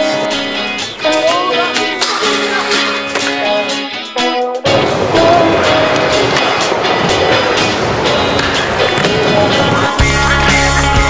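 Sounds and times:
skateboard wheels rolling: 0:00.0 - 0:03.8, 0:04.6 - 0:10.9
skateboard clacking on landing: 0:05.2 - 0:09.9.

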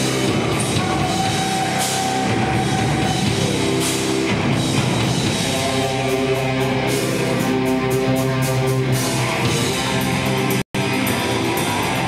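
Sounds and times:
heavy rock band playing: 0:00.0 - 0:12.0.

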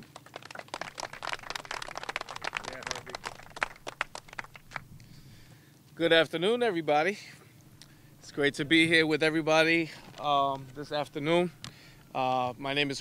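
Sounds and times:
small crowd clapping: 0:00.0 - 0:05.2
papers rustling: 0:09.9 - 0:10.9.

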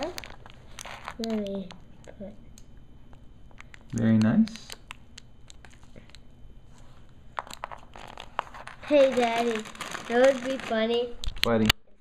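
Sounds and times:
plastic bag crinkling: 0:07.4 - 0:11.5.

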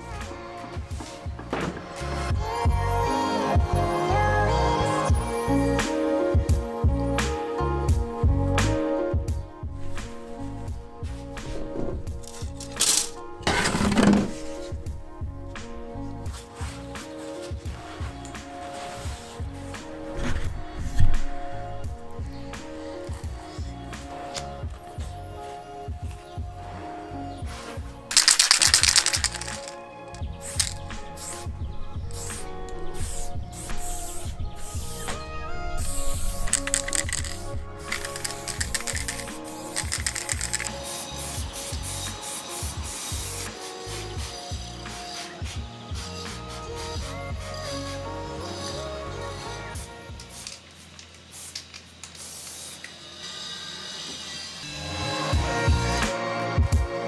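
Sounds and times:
background music: 0:00.0 - 0:51.0, 0:53.2 - 0:57.0
spray can mixing ball rattling: 0:12.2 - 0:14.8, 0:28.1 - 0:45.2, 0:50.2 - 0:53.0
spray hiss: 0:30.4 - 0:47.9, 0:50.1 - 0:54.8.

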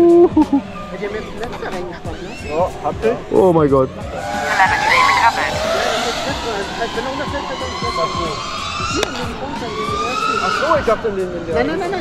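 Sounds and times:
drone motors whining: 0:04.0 - 0:11.4.

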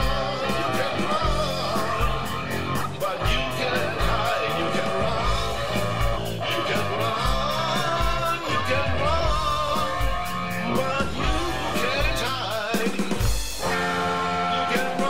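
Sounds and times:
blues-rock band playing: 0:00.0 - 0:15.0
electric guitar bending notes: 0:00.0 - 0:15.0.

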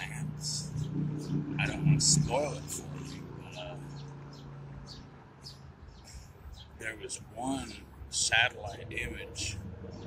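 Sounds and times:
small bird chirping: 0:00.0 - 0:07.8.

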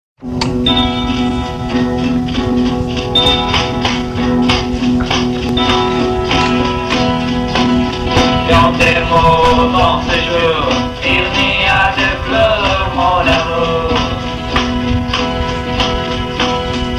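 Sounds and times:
steady drum beat: 0:00.2 - 0:16.9
sustained guitar chords: 0:00.2 - 0:16.9.

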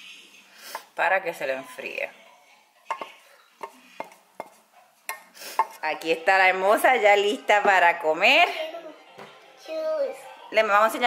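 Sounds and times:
pot clinking on ceramic plate: 0:02.9 - 0:05.8.

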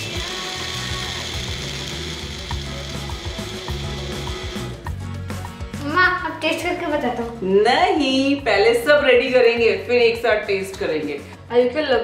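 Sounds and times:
blender running: 0:00.0 - 0:05.0
light background music: 0:00.0 - 0:12.0.

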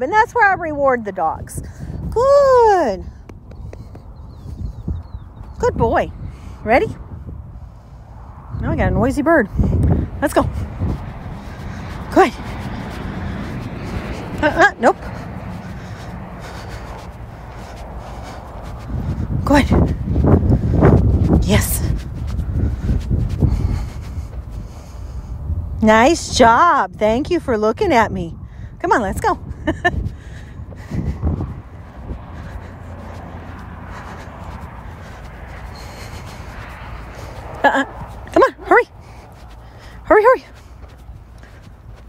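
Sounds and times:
wind rumbling on microphone: 0:00.0 - 0:42.0.

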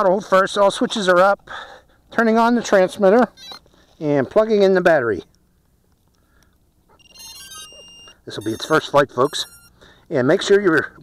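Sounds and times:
electronic startup beeps: 0:07.0 - 0:09.8.

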